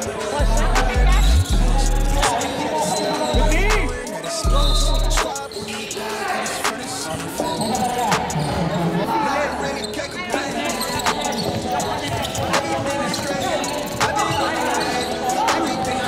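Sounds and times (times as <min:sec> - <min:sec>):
music: 0:00.0 - 0:16.0
sneakers squeaking: 0:00.0 - 0:16.0
voices: 0:00.0 - 0:16.0.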